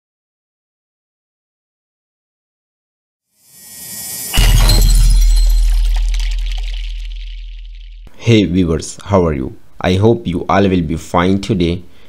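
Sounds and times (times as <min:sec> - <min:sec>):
rising whoosh: 0:03.6 - 0:08.0
cinematic impact boom: 0:03.6 - 0:08.1.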